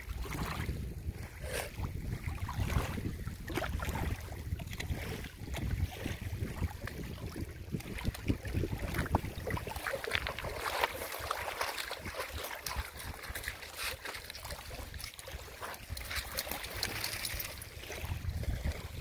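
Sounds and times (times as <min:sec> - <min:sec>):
wind buffeting microphone: 0:00.0 - 0:13.9, 0:14.5 - 0:19.0
lapping lake water: 0:00.0 - 0:19.0
dog splashing through water: 0:00.1 - 0:19.0.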